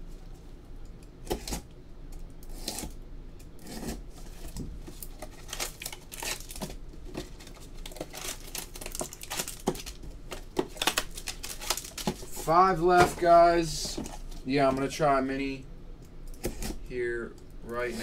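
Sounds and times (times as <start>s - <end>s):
plastic wrapping crinkling and tearing: 4.2s - 14.4s.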